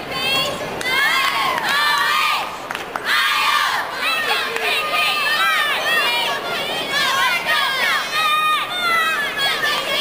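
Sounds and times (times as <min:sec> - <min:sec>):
crowd cheering and shouting: 0:00.1 - 0:10.0.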